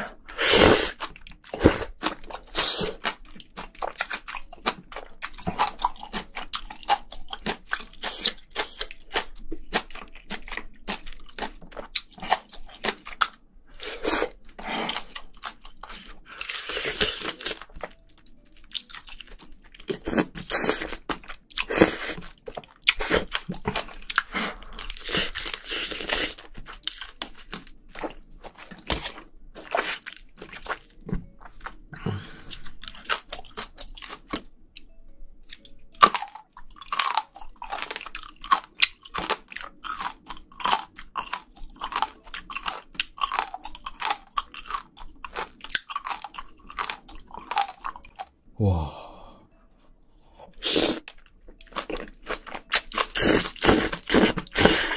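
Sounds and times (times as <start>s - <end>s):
wet crunchy chewing: 0.1s - 48.3s, 50.5s - 54.9s.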